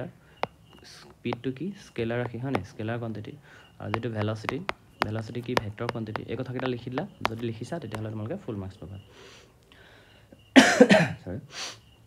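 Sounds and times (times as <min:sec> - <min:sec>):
noisy breath out: 0:03.4 - 0:03.8, 0:09.0 - 0:10.4
man coughing: 0:10.6 - 0:11.3.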